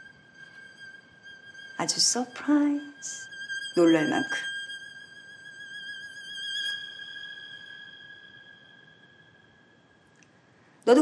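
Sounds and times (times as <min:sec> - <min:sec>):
held high violin note: 0:00.0 - 0:09.7.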